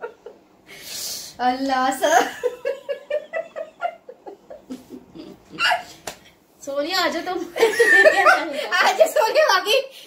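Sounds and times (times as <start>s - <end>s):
woman laughing hard: 7.6s - 8.6s.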